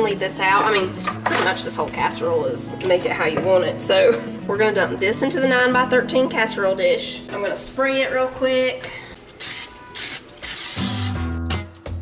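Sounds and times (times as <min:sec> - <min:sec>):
guitar music: 0:00.0 - 0:08.6, 0:09.5 - 0:12.0
aerosol spray hissing: 0:09.4 - 0:11.3.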